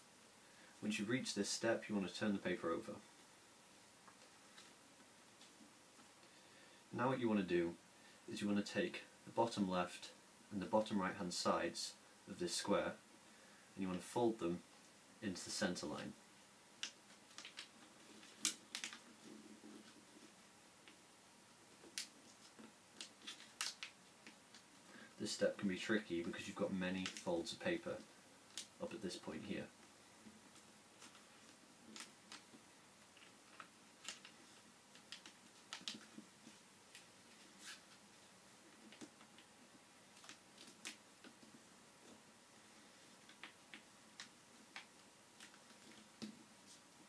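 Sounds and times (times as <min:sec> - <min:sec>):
quiet hiss: 0:00.0 - 0:47.0
paper crackling as folded: 0:16.8 - 0:20.4, 0:21.8 - 0:24.7, 0:30.5 - 0:38.0.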